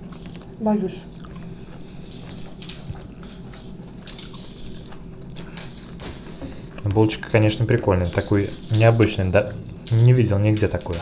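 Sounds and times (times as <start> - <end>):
chewing a burger: 0.0 - 6.9.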